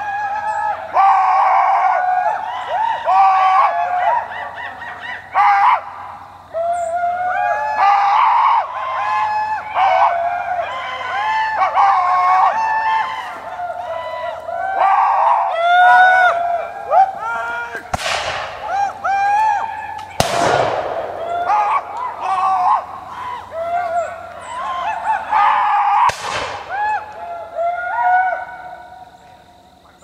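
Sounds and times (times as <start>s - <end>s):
chorus of high calls: 0.0s - 30.0s
musket shots with echo: 17.9s - 18.6s, 20.2s - 21.3s, 26.1s - 26.6s.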